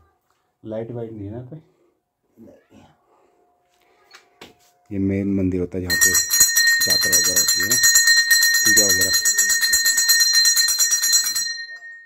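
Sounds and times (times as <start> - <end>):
metal bell rung rapidly: 5.9 - 12.0.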